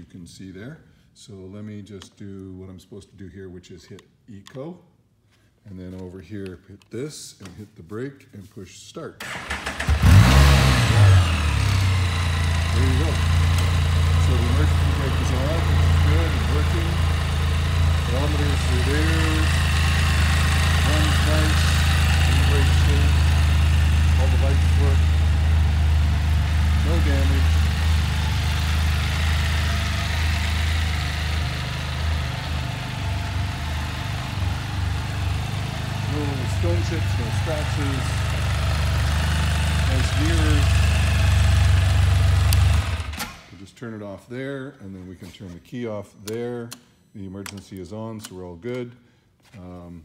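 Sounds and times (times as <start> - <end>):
engine idling: 9.3 - 43.2.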